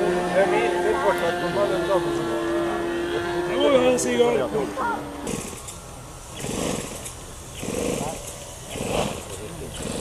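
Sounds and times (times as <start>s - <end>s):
model airplane engine: 0.0s - 10.0s.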